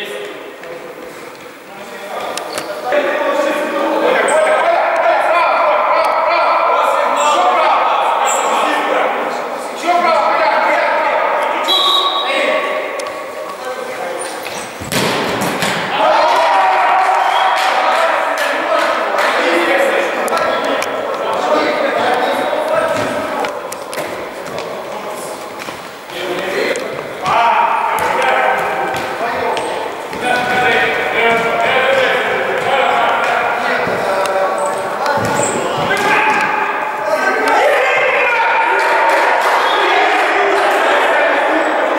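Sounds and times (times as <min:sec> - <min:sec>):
players shouting in a sports hall: 0:02.6 - 0:41.9.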